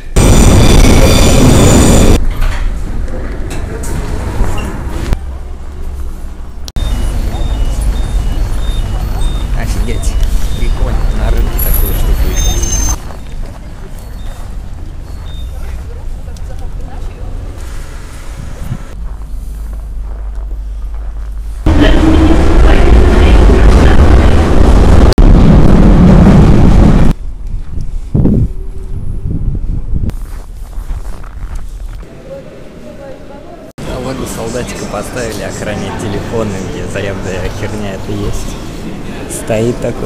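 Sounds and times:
metro train rumbling: 0:00.0 - 0:20.0, 0:21.4 - 0:27.2
street and station background: 0:00.0 - 0:40.0.

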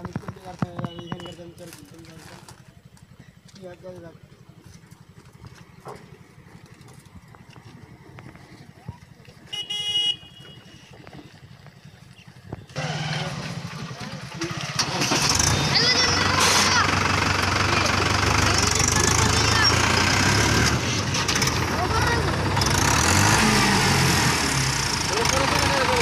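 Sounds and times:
voices: 0:00.0 - 0:23.0, 0:24.8 - 0:26.0
tractor engine idling: 0:00.0 - 0:26.0
vehicle horn: 0:09.5 - 0:11.0
loud tractor engine running: 0:11.7 - 0:26.0.

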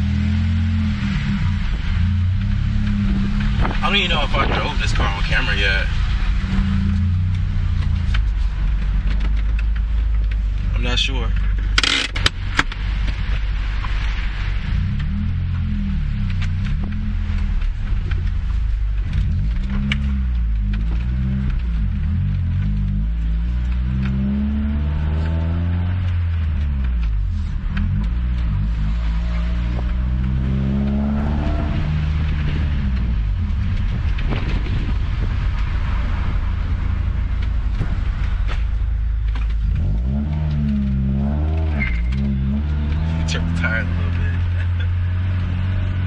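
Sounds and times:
car engine running at low revs: 0:00.0 - 0:46.0.

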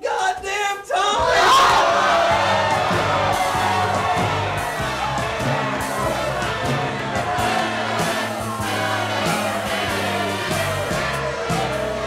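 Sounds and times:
crowd shouting and yelling: 0:00.9 - 0:12.0
music with bass line: 0:01.8 - 0:12.0.

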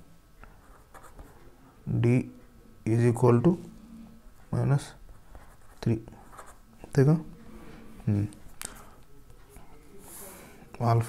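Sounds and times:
pen scratching on paper: 0:00.6 - 0:01.4, 0:05.1 - 0:06.6.

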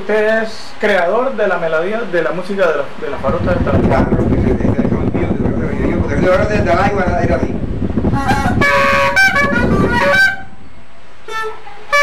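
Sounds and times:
cane clarinet held notes: 0:08.1 - 0:12.0.

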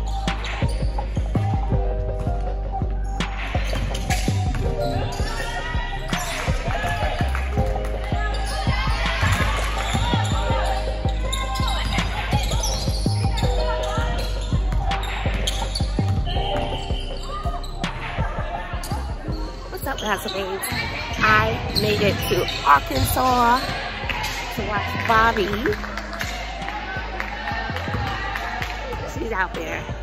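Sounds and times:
sneaker squeaks: 0:00.0 - 0:02.3, 0:03.0 - 0:26.7
players' voices echoing: 0:03.6 - 0:30.0
basketballs bouncing on hardwood floor: 0:06.8 - 0:17.0.

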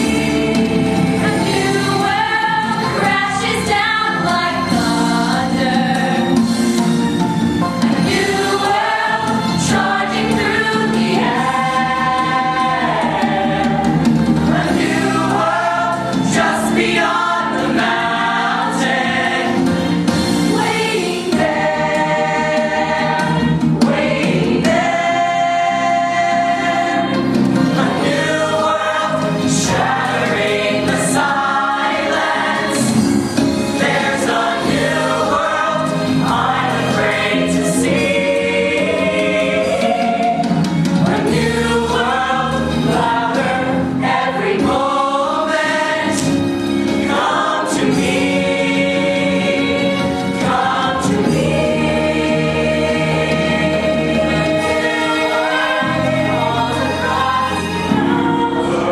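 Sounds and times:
mixed choir singing: 0:00.0 - 0:58.9.

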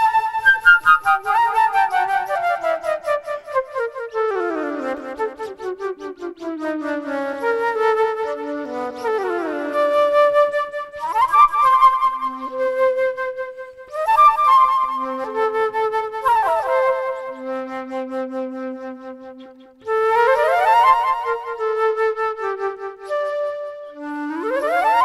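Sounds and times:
solo flute improvising: 0:00.0 - 0:25.0.

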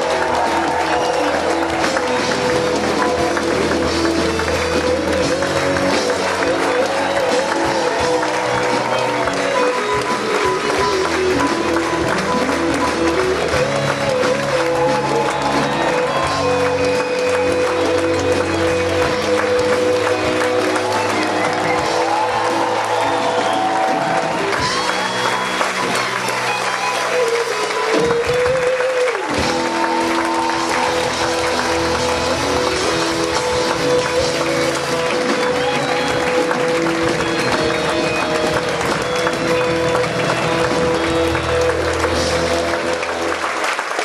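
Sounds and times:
symphony orchestra playing: 0:00.0 - 0:28.6, 0:29.4 - 0:44.0
clapping applause: 0:00.0 - 0:44.0.

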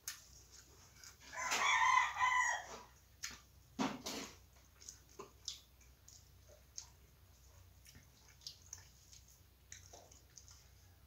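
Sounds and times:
rooster crowing: 0:01.2 - 0:02.9
clicks of eating off metal plate: 0:02.7 - 0:07.0.

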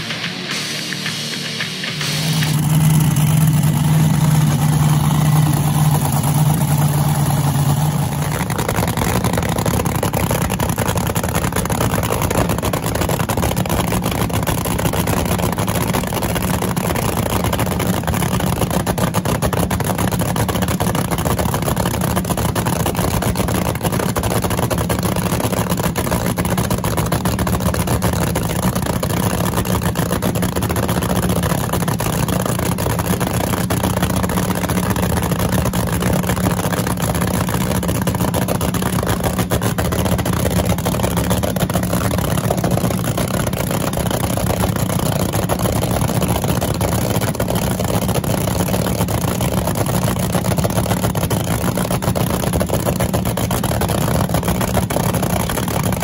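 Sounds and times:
rock music: 0:00.0 - 0:05.5
supercharged engine idling: 0:00.0 - 0:56.0.

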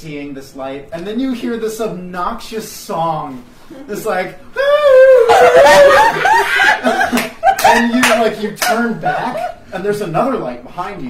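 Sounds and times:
person laughing: 0:04.6 - 0:09.6.

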